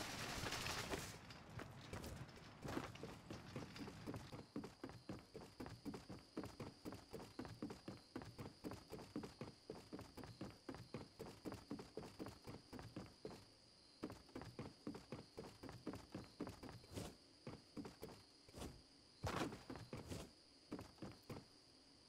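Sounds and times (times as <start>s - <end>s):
quick footsteps: 0.0s - 21.5s.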